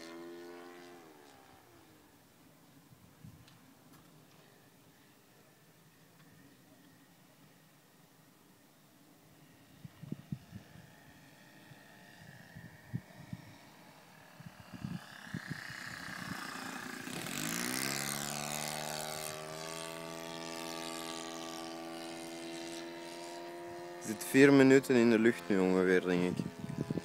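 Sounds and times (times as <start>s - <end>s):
model plane engine passing: 0.0s - 2.6s, 9.0s - 27.0s.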